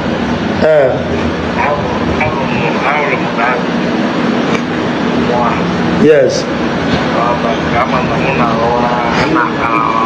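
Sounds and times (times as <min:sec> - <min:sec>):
steady low drone: 0:00.0 - 0:10.0
person speaking: 0:00.6 - 0:03.8, 0:05.1 - 0:10.0.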